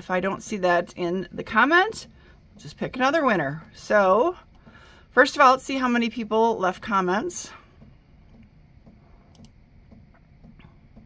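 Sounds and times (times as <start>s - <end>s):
light clicks and ticks: 6.7s - 11.0s.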